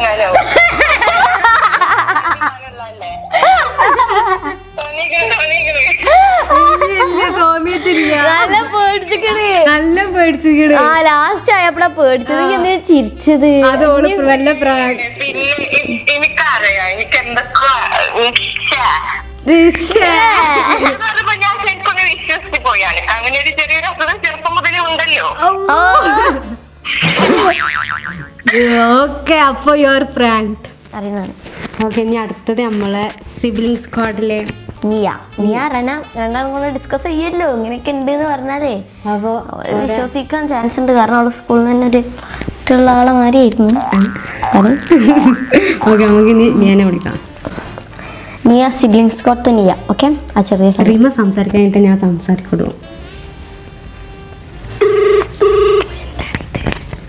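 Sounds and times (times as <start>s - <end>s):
comic boing sound effect: 27.0s - 28.4s, 43.8s - 45.6s
telephone ringback tone: 54.8s - 55.9s.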